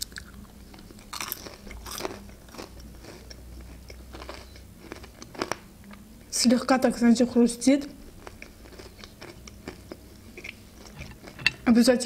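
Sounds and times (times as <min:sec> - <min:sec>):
person biting and chewing dumpling: 0:00.0 - 0:05.7, 0:08.1 - 0:11.4.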